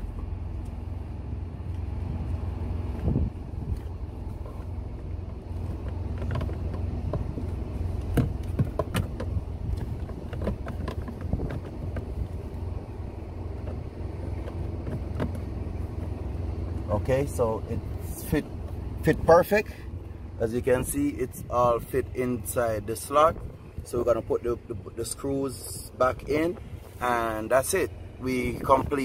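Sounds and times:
steady low hum: 0.0s - 29.0s
hard plastic clicking and knocking: 8.0s - 12.2s, 14.4s - 15.5s.

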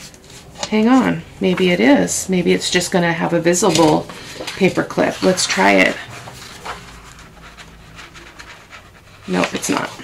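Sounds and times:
paper and card rustling: 0.0s - 10.0s.

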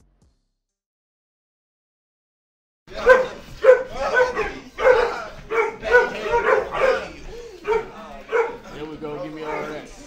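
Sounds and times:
bark-like vocal bursts: 3.0s - 8.6s.

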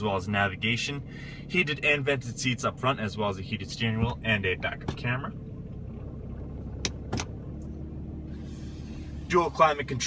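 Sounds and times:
low hum in truck cab: 0.0s - 10.0s.

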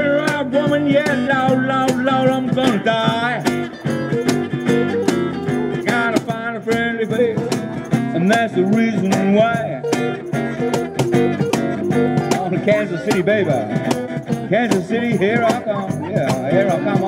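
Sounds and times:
bending guitar notes: 0.0s - 17.0s
blues band playing: 0.0s - 17.0s.

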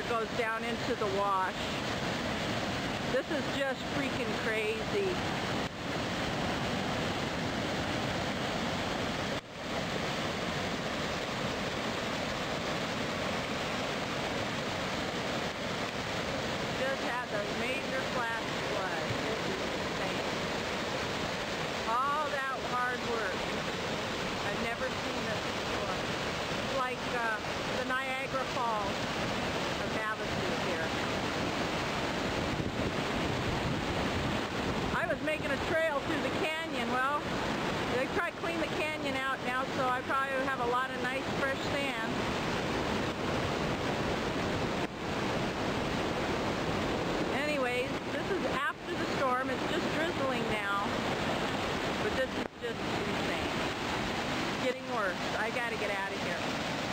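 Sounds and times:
floodwater rushing: 0.0s - 56.9s.

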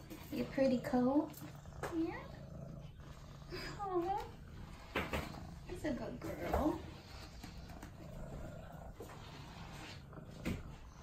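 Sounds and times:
cat purring: 0.0s - 11.0s
brush strokes through fur: 8.9s - 10.1s.

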